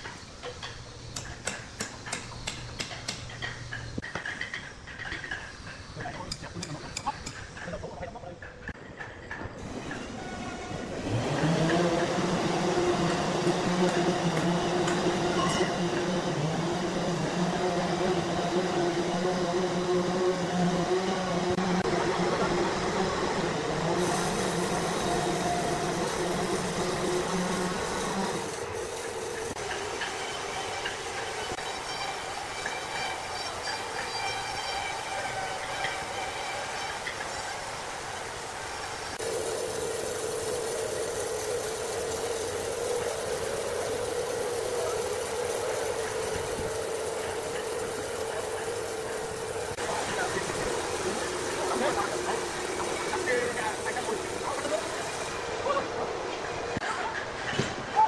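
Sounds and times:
sawmill mechanical hum: 0:00.0 - 0:58.0.

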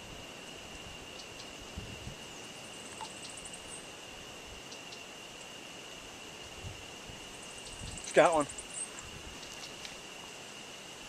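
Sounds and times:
faint background hiss: 0:00.0 - 0:11.0
high-pitched insect drone: 0:00.0 - 0:11.0
faint clicks: 0:09.4 - 0:10.0.

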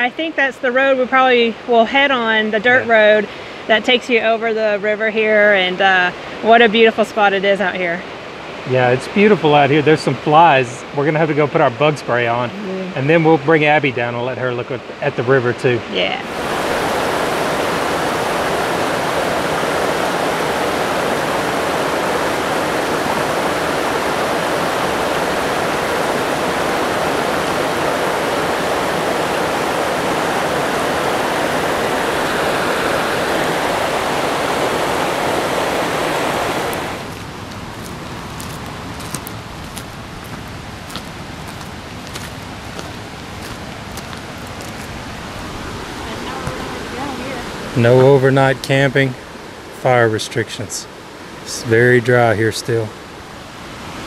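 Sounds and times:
river rushing over boulders: 0:06.1 - 0:54.0.

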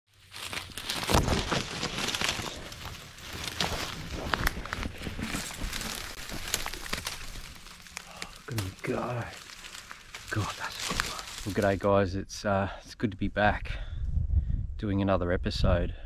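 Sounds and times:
dry reeds rustling and snapping: 0:00.1 - 0:11.9.

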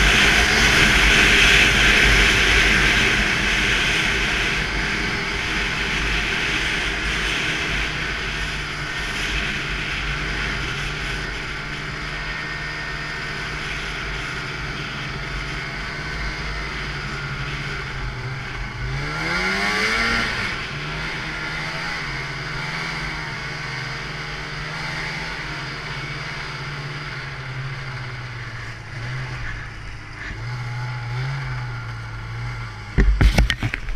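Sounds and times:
snowmobile engine revving: 0:00.0 - 0:33.9.

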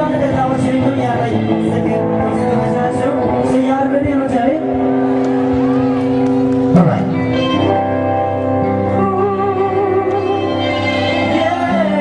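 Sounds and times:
man's voice: 0:00.0 - 0:05.0, 0:06.6 - 0:07.8, 0:08.9 - 0:12.0
live band holding a chord: 0:00.0 - 0:12.0.

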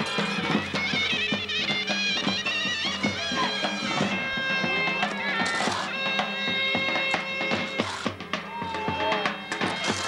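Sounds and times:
drum: 0:00.0 - 0:10.0
folk music wind instruments: 0:00.0 - 0:10.0.

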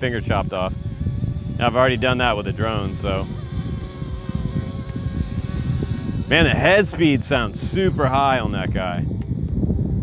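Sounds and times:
rc helicopter rotor whine: 0:00.0 - 0:10.0
wind rumble on microphone: 0:00.0 - 0:10.0.

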